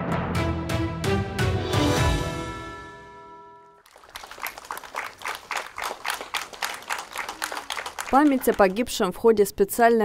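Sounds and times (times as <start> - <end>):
crowd applauding: 3.8 - 9.0.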